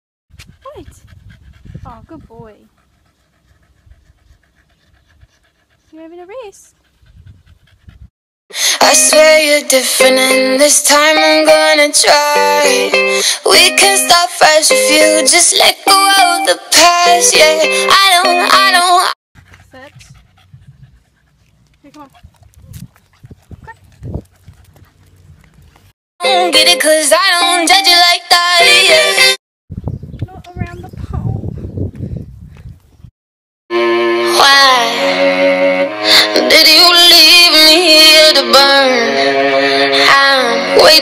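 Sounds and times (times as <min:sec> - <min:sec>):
dog panting faintly: 0:00.3 - 0:08.1, 0:19.4 - 0:26.0.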